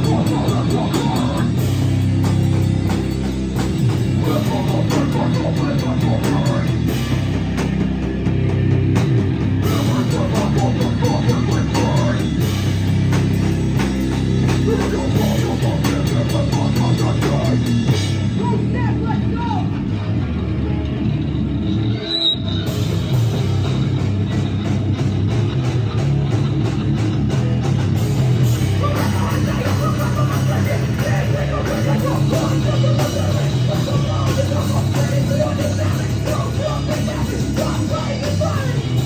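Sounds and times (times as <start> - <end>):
distorted electric guitar: 0.0 - 39.0
drum kit: 0.0 - 39.0
person singing into a microphone: 4.2 - 6.9, 9.6 - 12.3, 14.6 - 17.7, 28.8 - 39.0.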